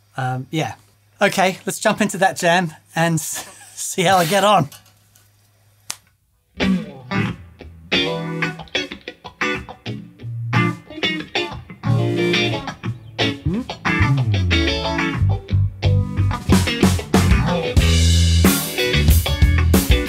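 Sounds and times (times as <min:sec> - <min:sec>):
rock band playing: 0:06.6 - 0:20.0.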